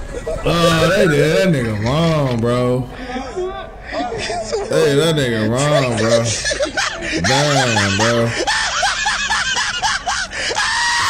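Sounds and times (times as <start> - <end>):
person shrieking high-pitched cries: 5.7 - 11.0.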